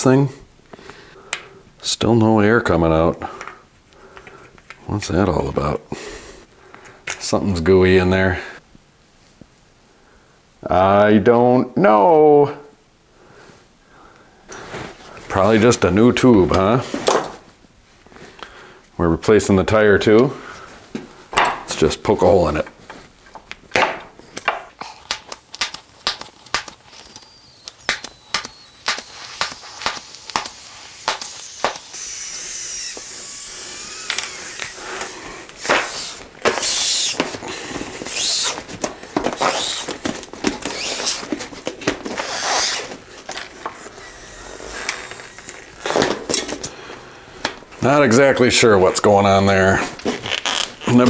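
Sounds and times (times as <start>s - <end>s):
air hissing from inner tube: 24.8s - 47.3s.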